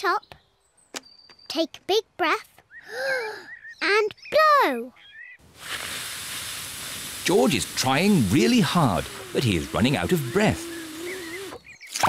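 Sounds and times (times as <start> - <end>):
airy hiss of blown breath: 5.5 - 8.2.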